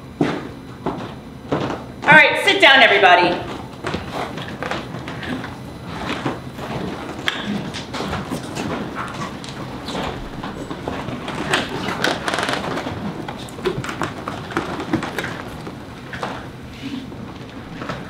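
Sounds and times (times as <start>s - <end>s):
rolling office chairs: 0.0s - 18.0s
footsteps on hard floor: 0.2s - 2.4s, 3.3s - 16.5s
chairs knocking against tables: 3.2s - 16.5s.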